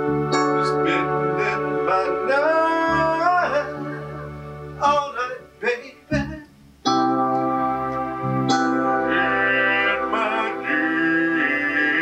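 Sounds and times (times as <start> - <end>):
piano and strings chords: 0.0 - 12.0.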